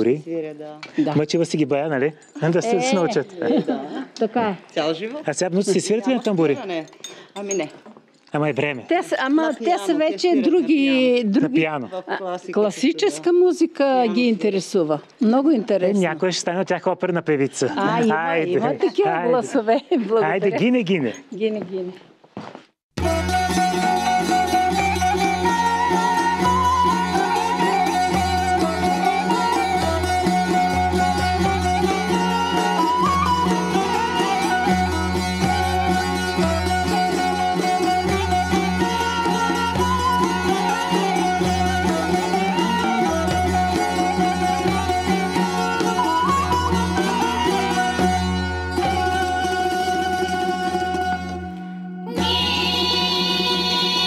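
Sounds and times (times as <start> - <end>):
plucked lutes playing folk tune: 23.0 - 54.0.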